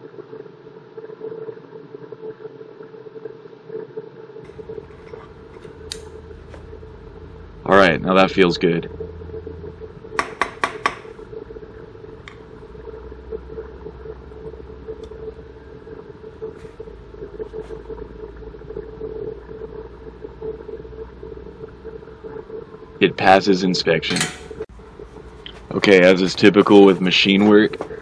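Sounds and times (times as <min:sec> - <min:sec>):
low machine hum: 0:00.0 - 0:28.0.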